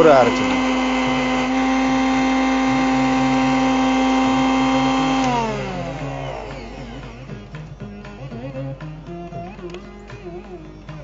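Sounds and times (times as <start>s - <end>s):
mixer grinder running: 0.0s - 11.0s
motor winding down: 0.0s - 11.0s.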